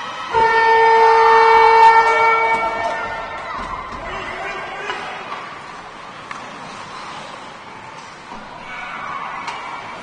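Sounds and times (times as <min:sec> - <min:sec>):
horn long blast: 0:00.3 - 0:03.4.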